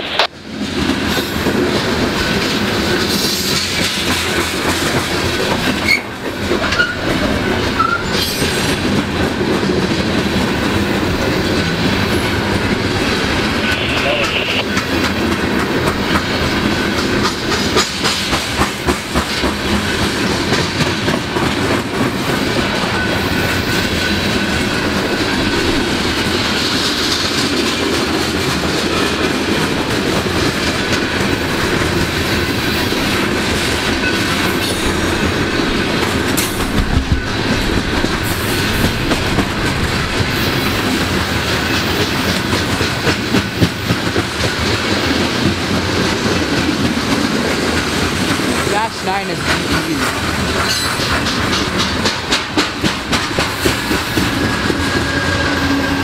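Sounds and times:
train wheels rumbling on rails: 0.0s - 56.0s
clickety-clack over rail joints: 0.1s - 56.0s.

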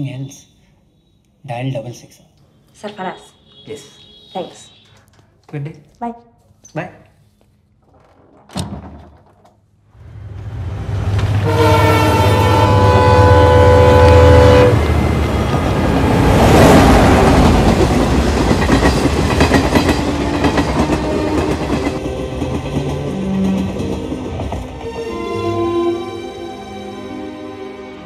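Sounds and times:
train rumbling past: 9.9s - 28.0s
train horn blast: 11.3s - 14.9s.

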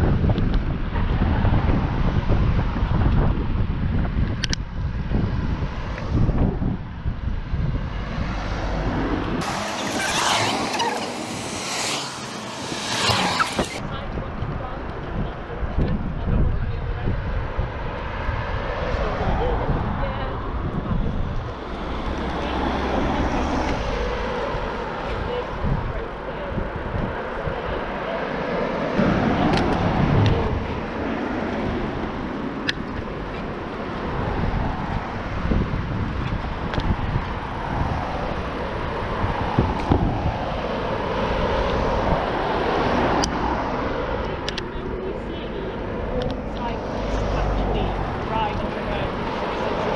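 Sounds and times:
road traffic passing: 0.0s - 49.9s
wind noise on microphone: 0.0s - 49.9s.

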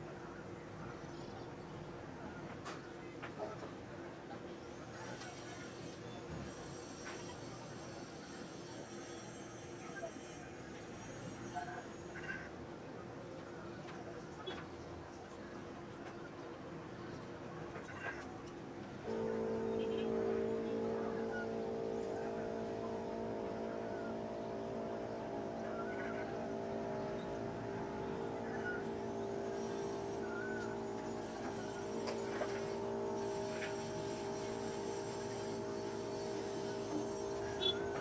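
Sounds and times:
steady drone of held tones: 19.0s - 38.0s
faint chirps: 19.1s - 38.0s.

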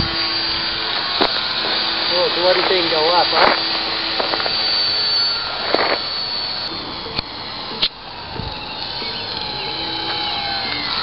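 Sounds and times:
model plane motor whining: 0.0s - 11.0s.

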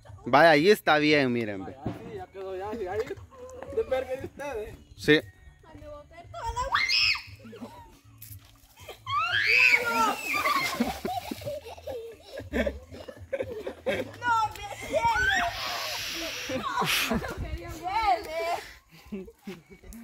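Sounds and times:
children screaming and laughing: 6.3s - 20.0s
water splashing: 8.4s - 11.7s.

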